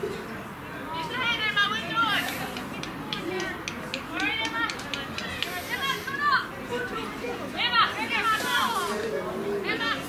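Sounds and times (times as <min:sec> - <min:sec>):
girls calling and shouting: 0:00.8 - 0:09.0.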